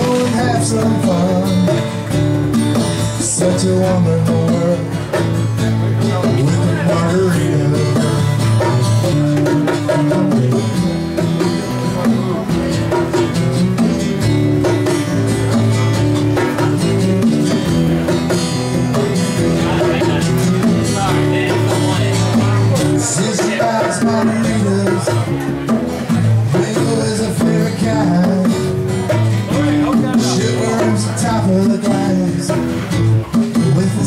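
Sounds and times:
acoustic guitars strummed: 0.0 - 34.0.

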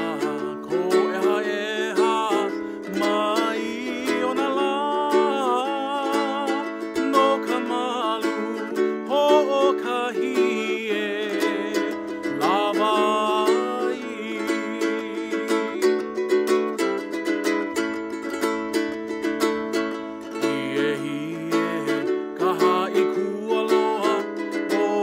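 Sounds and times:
man singing: 0.0 - 25.0
ukulele strumming: 0.0 - 25.0.

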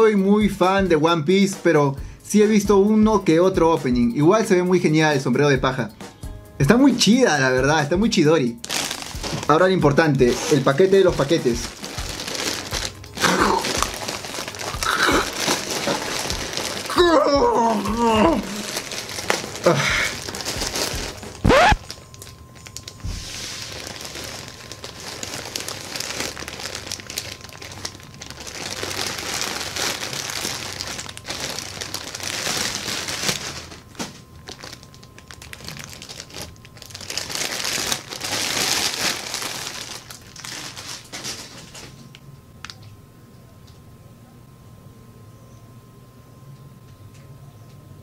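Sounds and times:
plastic packaging crinkling: 8.5 - 42.8
plastic mailer bag tearing: 8.6 - 42.0.

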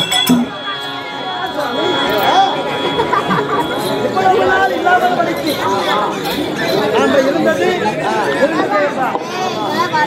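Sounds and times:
voices talking over one another: 0.0 - 10.0.

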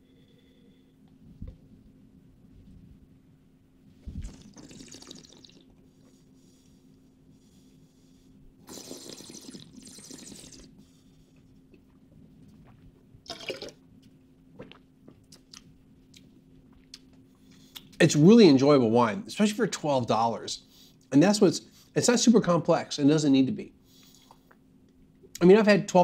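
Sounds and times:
wine slurping in mouth: 4.0 - 5.8, 8.6 - 10.8, 12.7 - 13.8.

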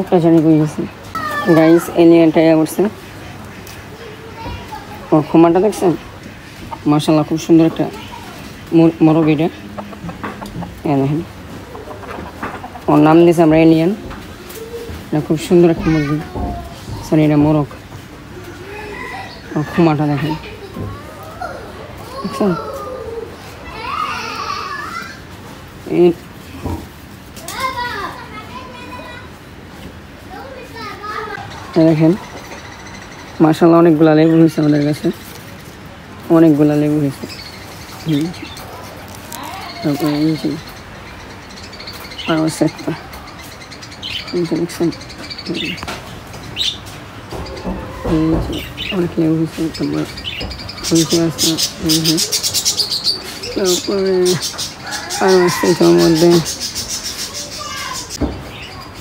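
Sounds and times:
children calling and chattering: 0.0 - 59.0
small birds chirping: 30.3 - 59.0.

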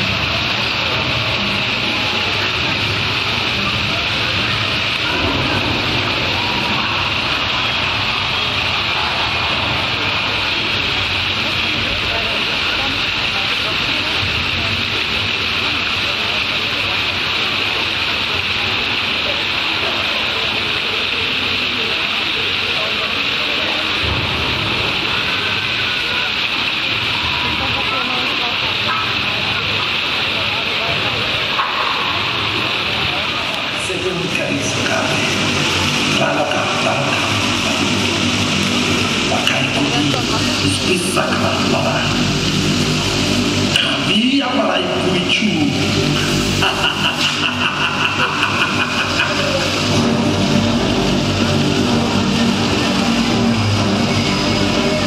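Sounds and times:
hissing rush of flame and water: 0.0 - 55.0
ride machinery rumble: 0.0 - 55.0.

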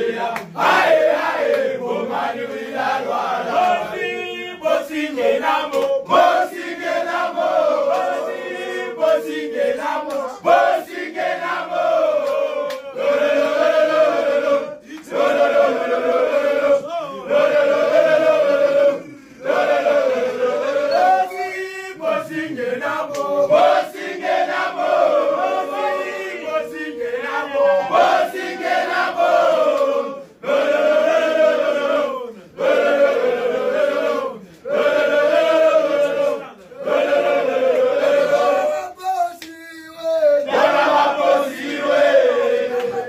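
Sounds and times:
men chanting in unison: 0.0 - 39.0, 40.1 - 43.0.

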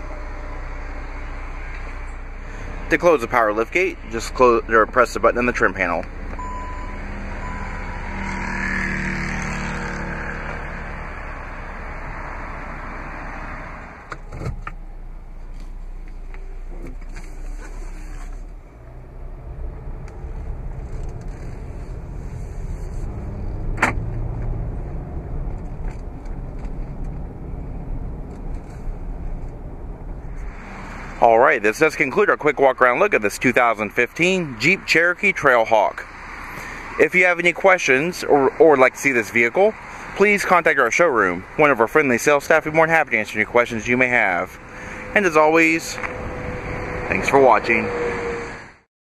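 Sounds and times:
vehicle rumble from inside cabin: 0.0 - 48.5
short beeping tone: 6.4 - 9.0.

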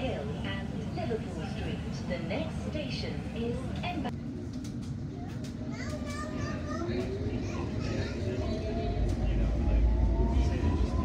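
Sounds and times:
passengers' voices: 0.0 - 11.0
train carriage rumble: 0.0 - 11.0
child's voice: 5.2 - 8.4.

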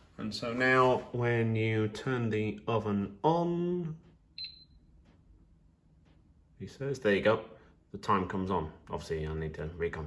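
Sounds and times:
high electronic oven beep: 4.4 - 4.9.

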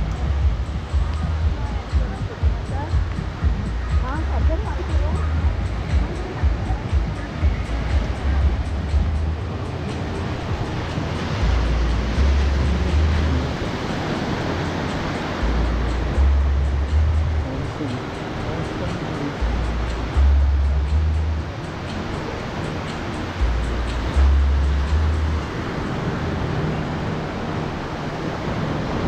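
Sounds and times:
small waves breaking on sand: 0.0 - 29.0
wind buffeting microphone: 0.0 - 29.0.

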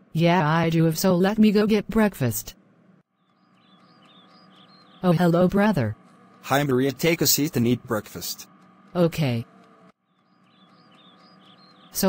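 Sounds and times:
faint bird chirping: 3.1 - 12.0.

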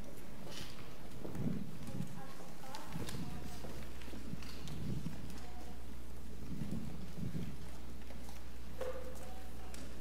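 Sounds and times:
footsteps on wooden stage floor: 0.0 - 5.8.

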